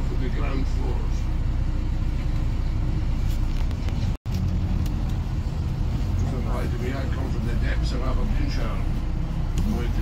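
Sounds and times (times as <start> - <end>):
bus engine and road rumble: 0.0 - 10.0.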